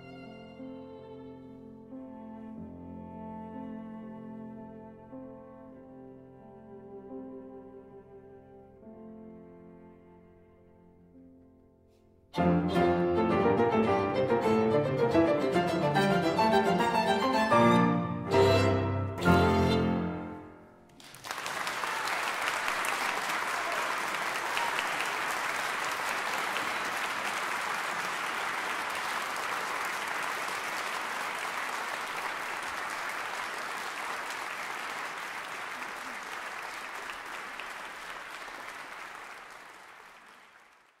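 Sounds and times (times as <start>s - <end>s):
audience applauding: 20.9s - 41.0s.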